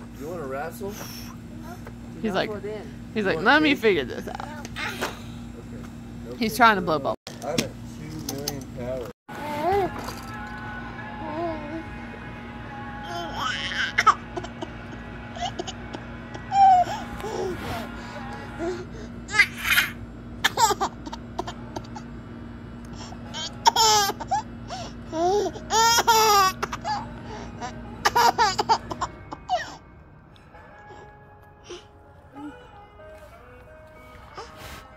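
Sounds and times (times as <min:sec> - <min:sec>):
baby laughing: 0:19.3 - 0:22.0, 0:23.3 - 0:27.0, 0:27.6 - 0:29.8.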